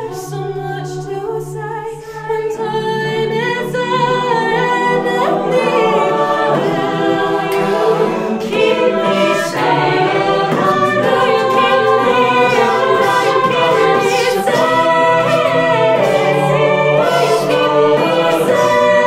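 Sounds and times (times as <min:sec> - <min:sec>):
vocal group singing in harmony: 0:00.0 - 0:19.0.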